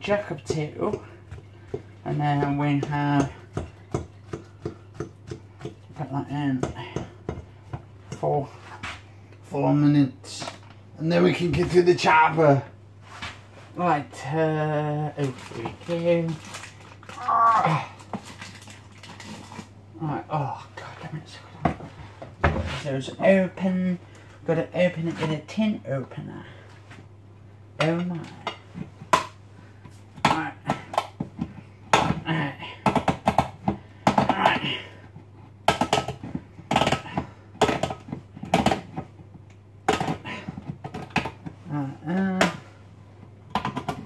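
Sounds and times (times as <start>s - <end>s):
items knocking and rattling on shelf: 0.0s - 9.1s, 15.1s - 19.7s, 20.8s - 23.3s, 27.8s - 42.7s, 43.4s - 44.0s
steady low hum: 0.0s - 44.0s.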